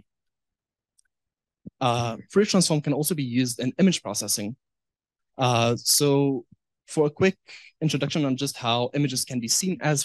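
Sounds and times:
man speaking: 0:01.7 - 0:04.6, 0:05.4 - 0:10.0.

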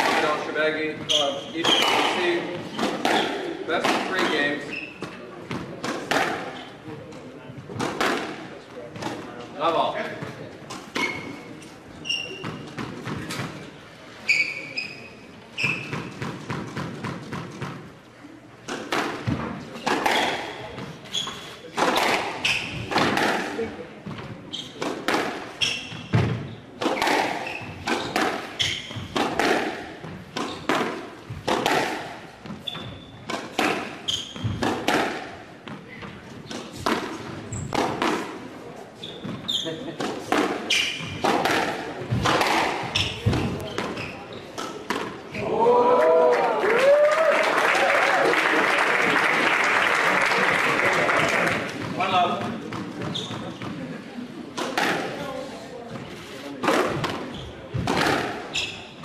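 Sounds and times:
shoes squeaking on hardwood: 0:00.0 - 0:03.4, 0:10.9 - 0:13.4, 0:14.2 - 0:16.3, 0:20.1 - 0:21.7, 0:22.4 - 0:23.1, 0:25.5 - 0:29.4, 0:30.0 - 0:31.6, 0:32.4 - 0:34.8, 0:39.0 - 0:41.4, 0:42.1 - 0:44.8, 0:53.0 - 0:53.8, 0:57.0 - 0:59.0
squash ball hits: 0:00.0 - 0:04.6, 0:05.5 - 0:06.6, 0:07.7 - 0:09.2, 0:18.7 - 0:20.9, 0:21.7 - 0:38.4, 0:40.0 - 0:44.0, 0:54.6 - 0:55.3, 0:56.6 - 0:58.5.

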